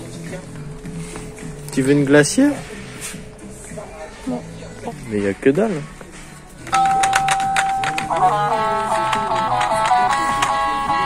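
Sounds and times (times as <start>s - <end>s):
toy clicks: 6.6s - 8.4s.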